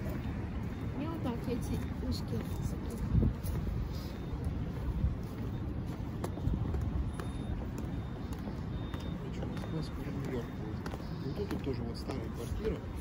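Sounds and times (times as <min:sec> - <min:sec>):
city background rumble: 0:00.0 - 0:13.0.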